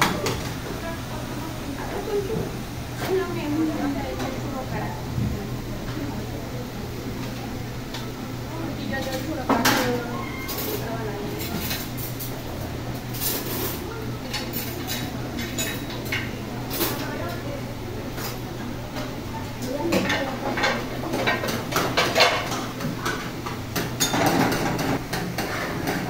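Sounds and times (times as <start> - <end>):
metal pans and utensils clanking: 8.8 - 17.4, 18.1 - 26.0.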